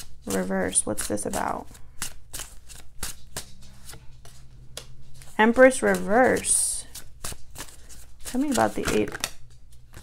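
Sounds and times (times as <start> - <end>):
cards being shuffled: 0.0 - 10.0
cards clicking: 2.0 - 10.0.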